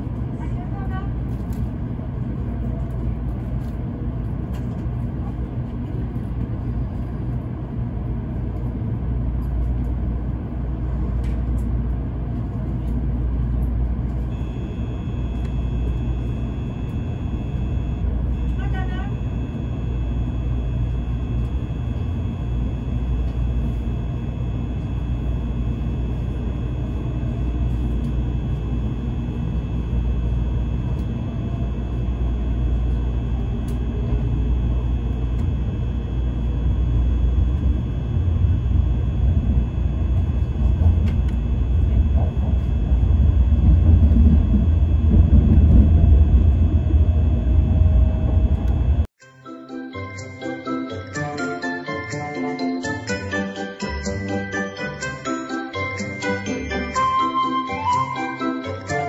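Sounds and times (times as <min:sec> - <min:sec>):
steady high whine: 0:00.0 - 0:59.0
train low rumble: 0:00.0 - 0:59.0.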